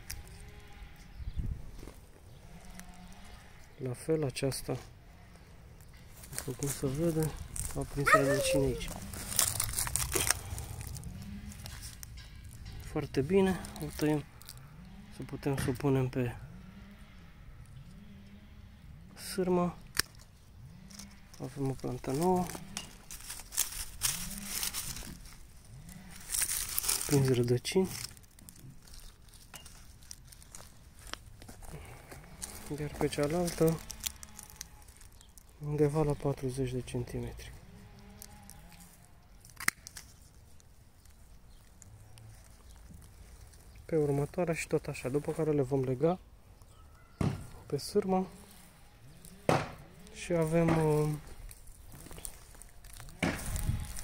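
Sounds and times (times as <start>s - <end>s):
dry leaves crackling: 1.7s - 3.8s, 5.2s - 14.8s, 20.8s - 46.0s, 48.0s - 54.0s
pruning shears snipping cane: 39.4s - 40.3s.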